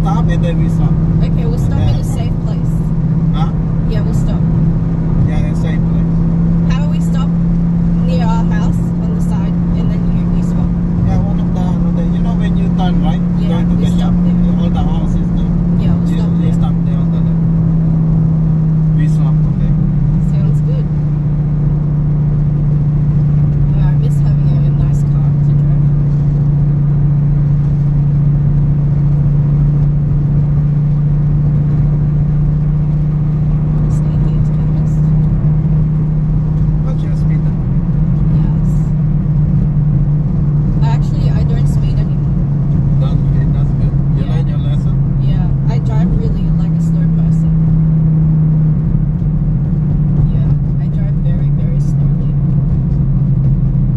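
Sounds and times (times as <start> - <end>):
car engine droning: 0.0 - 53.9
road noise: 0.0 - 53.9.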